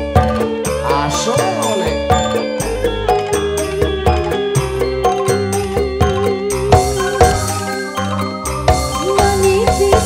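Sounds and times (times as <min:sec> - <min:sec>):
keyboard melody: 0:00.0 - 0:10.0.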